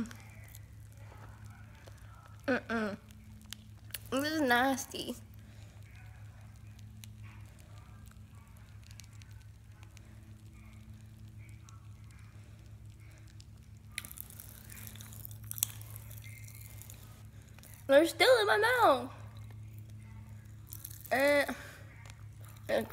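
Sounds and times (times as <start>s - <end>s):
popping candy crackling in mouth: 0.0s - 22.9s.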